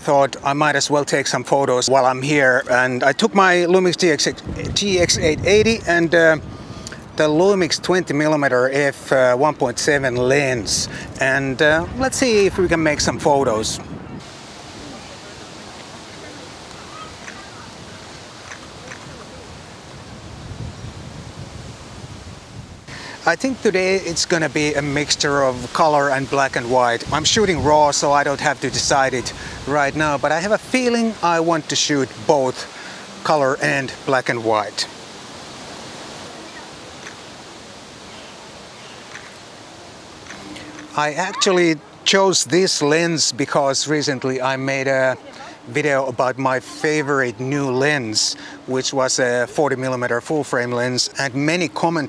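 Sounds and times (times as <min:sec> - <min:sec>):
steady outdoor hiss: 0:00.0 - 0:52.0
faint ticks: 0:39.1 - 0:39.4.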